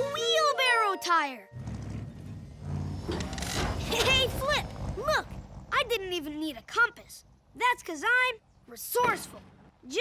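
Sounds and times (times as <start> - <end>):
cartoon truck engine rumbling: 1.4 - 9.9.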